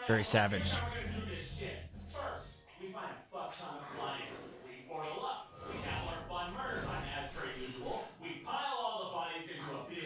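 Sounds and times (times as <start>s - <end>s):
person talking: 0.0s - 0.9s.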